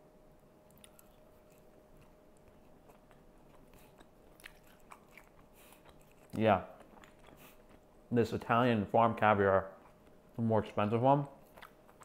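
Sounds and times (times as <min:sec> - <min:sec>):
person chewing: 0:00.7 - 0:07.9, 0:09.7 - 0:10.3, 0:11.4 - 0:12.0.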